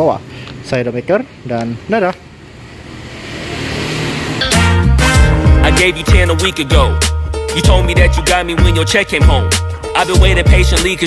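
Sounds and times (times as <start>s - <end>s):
rushing noise: 2.4s - 6.1s.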